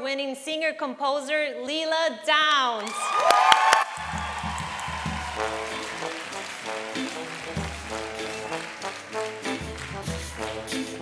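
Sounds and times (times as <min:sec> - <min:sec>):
audience applause: 0:02.8 - 0:11.0
low bass notes: 0:07.0 - 0:08.4, 0:09.0 - 0:11.0.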